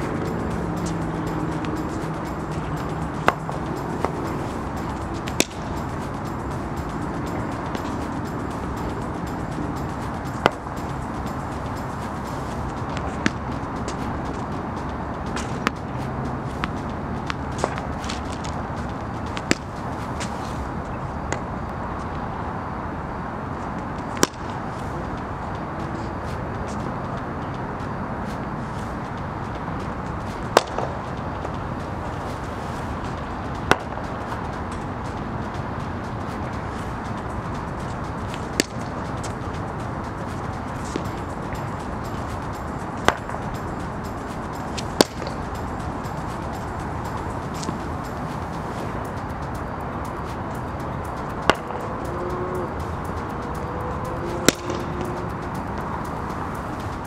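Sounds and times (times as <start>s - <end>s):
steady background rush: 0.0s - 57.0s
cricket bat striking ball: 54.5s - 54.8s.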